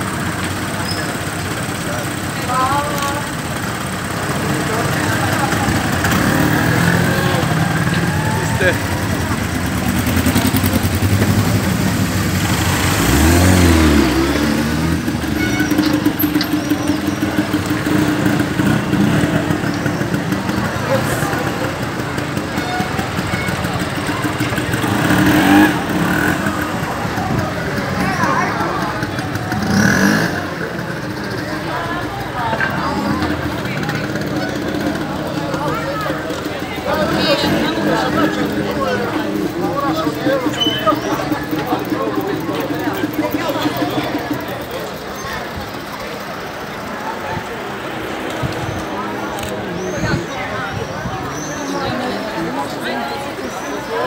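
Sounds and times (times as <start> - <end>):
chatter of many voices: 0.0 - 54.0
motorcycle engines running: 0.0 - 54.0.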